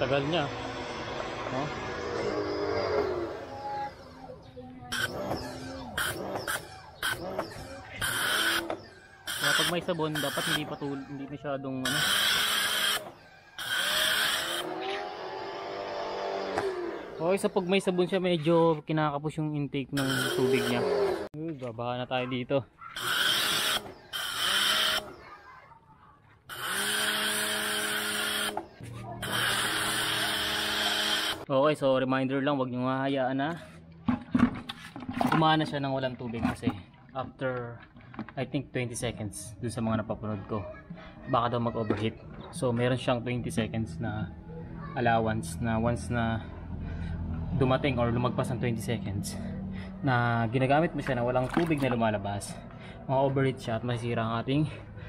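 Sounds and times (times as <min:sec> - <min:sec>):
motor and pump humming: 0:00.0 - 0:17.8, 0:20.0 - 0:21.3, 0:26.5 - 0:31.5, 0:49.8 - 0:53.0
pressure washer spraying: 0:09.3 - 0:10.8, 0:20.0 - 0:20.8.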